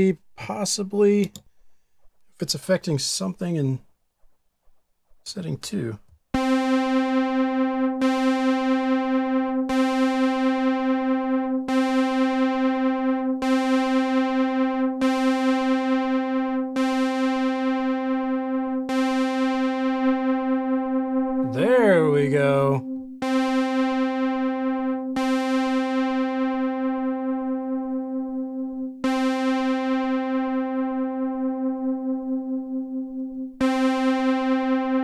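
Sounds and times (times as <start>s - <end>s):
synthesizer note with chorus: 6.4s - 35.0s.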